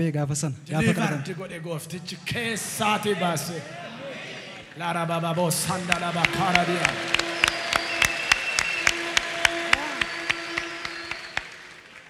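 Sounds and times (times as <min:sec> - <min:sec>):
congregation applauding: 0:02.8 - 0:12.0.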